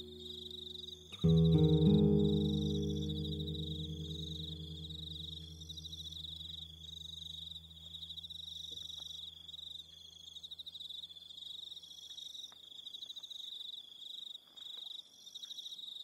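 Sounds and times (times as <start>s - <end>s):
acoustic guitar note ringing: 0.0s - 7.8s
crickets chirping: 0.0s - 16.0s.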